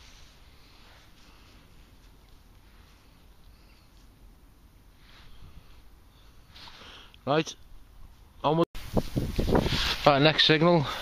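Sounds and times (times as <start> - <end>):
soft rustles: 0.0 - 4.3
outdoor background hiss: 0.0 - 11.0.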